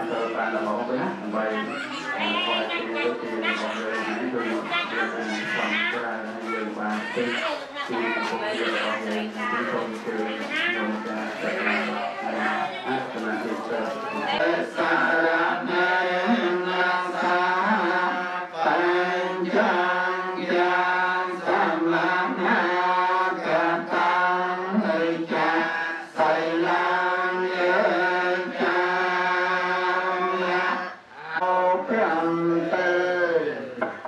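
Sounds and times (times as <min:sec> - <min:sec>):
voices chanting over a microphone: 0:00.0 - 0:34.0.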